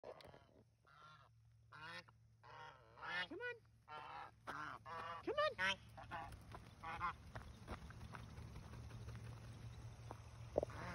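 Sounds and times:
geese honking: 0.8 - 7.8, 10.5 - 10.9.

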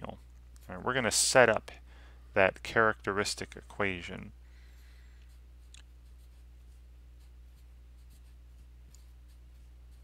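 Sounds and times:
low electrical hum: 0.0 - 10.0
marker scratching on paper: 5.2 - 10.0.

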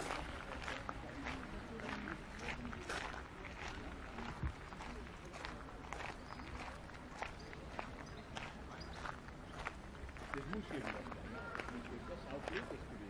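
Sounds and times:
footsteps walking: 0.0 - 12.8
faint voices: 0.0 - 13.0.

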